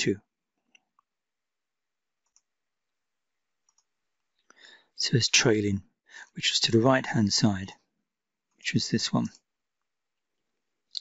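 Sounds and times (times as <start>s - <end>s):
computer mouse clicks: 2.2s - 2.5s, 3.6s - 3.9s.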